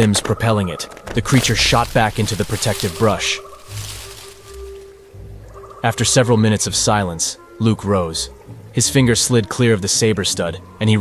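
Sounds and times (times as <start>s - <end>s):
narrator speaking: 0.0s - 4.0s.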